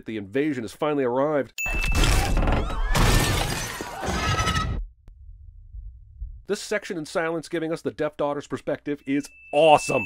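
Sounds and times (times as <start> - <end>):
glass shattering: 1.6 - 4.3
car crashing and tumbling: 1.8 - 4.8
people screaming: 2.6 - 4.7
faint low rumble: 5.0 - 6.5.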